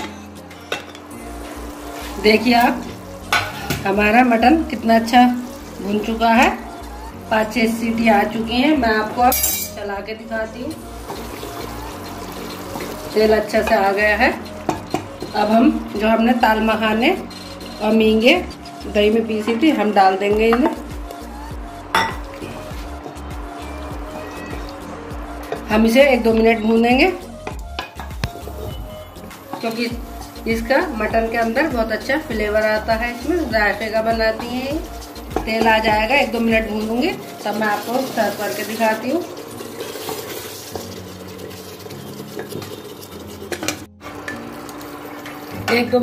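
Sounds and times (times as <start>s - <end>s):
gravy frying in oil: 1.2s - 28.3s, 29.5s - 46.0s
steel bowl clinking on pot: 9.3s - 9.8s, 21.9s - 22.2s
spoon stirring thick gravy: 33.9s - 45.4s.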